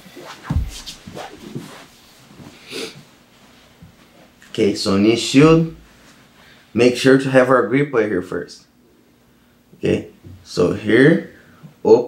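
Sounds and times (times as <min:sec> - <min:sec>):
fabric rustling and shuffling: 0:00.0 - 0:04.6
dull thump on foam mat: 0:00.4 - 0:01.6.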